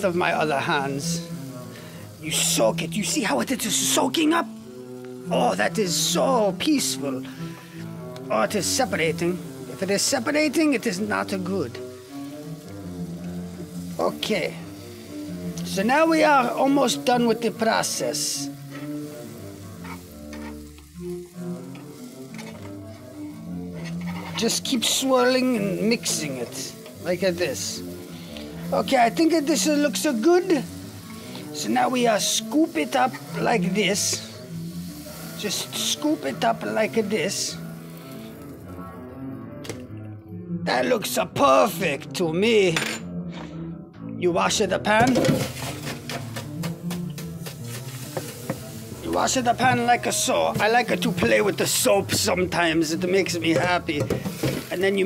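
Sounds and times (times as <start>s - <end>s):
butter sizzling in a frying pan: 0.0s - 38.8s, 45.4s - 55.0s
soft background music: 0.0s - 55.0s.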